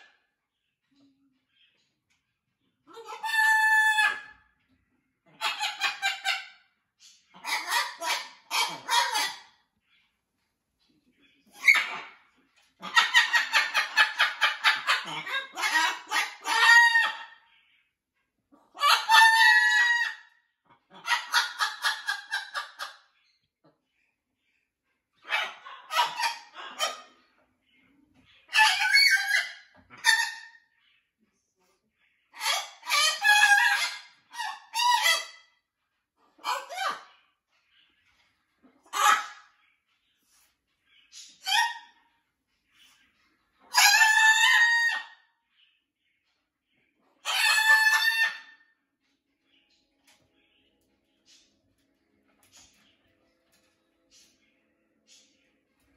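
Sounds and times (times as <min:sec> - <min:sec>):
macaw squawking: 0:43.7 - 0:45.2, 0:47.2 - 0:48.6.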